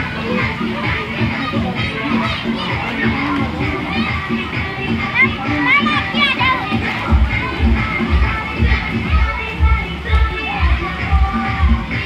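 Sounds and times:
children shouting and squealing: 0:00.0 - 0:12.0
dance music with heavy bass: 0:00.0 - 0:12.0.

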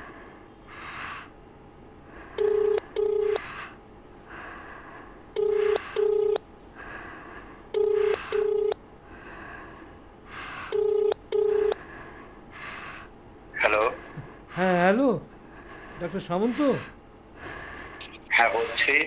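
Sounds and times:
heavy breathing: 0:00.0 - 0:01.4, 0:02.0 - 0:19.0
telephone ringback tone: 0:02.4 - 0:03.4, 0:05.4 - 0:06.4, 0:07.8 - 0:08.8, 0:10.8 - 0:11.8.

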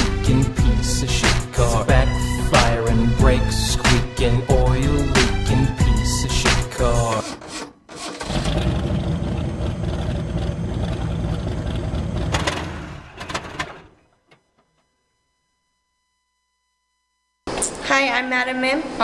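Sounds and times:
rapping over a beat: 0:00.0 - 0:07.3
car engine starting and running: 0:06.4 - 0:14.0.

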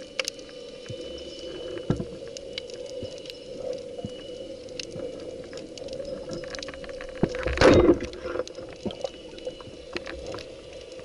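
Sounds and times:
underwater crackle of clicks: 0:00.0 - 0:11.0.

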